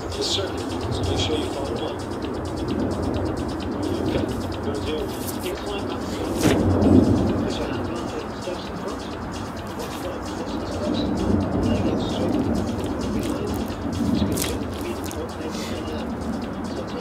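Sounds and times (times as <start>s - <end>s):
birds chirping: 0.0s - 17.0s
steady outdoor rush: 0.0s - 17.0s.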